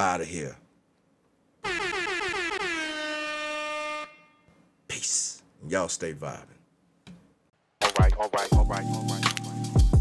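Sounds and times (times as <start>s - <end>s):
loud blaring horn note: 1.6s - 4.6s.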